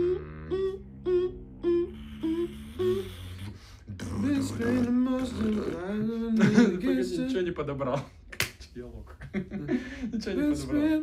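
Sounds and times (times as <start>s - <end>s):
short hummed melody notes: 0.0s - 5.1s
hummed bass line: 0.0s - 7.3s.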